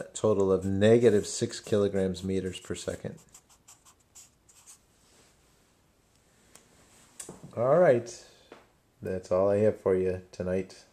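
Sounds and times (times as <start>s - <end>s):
marker pen scratching on paper: 0.6s - 4.9s.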